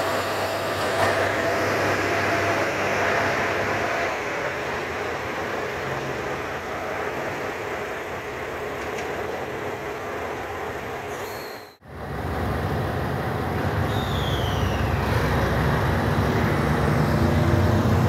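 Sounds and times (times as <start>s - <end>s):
diesel train passing: 0.0s - 18.0s.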